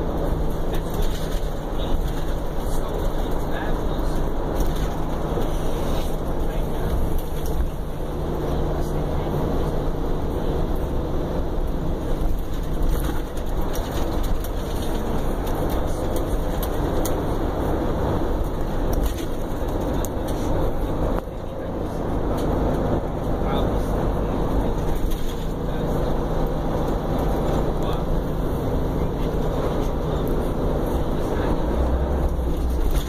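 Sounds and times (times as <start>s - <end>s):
bus engine and road noise: 0.0s - 33.0s.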